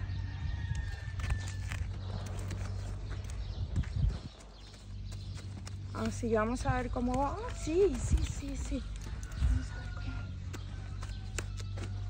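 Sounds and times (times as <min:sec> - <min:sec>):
steady low hum: 0:00.0 - 0:12.0
hooves stepping on dirt and straw: 0:00.2 - 0:12.0.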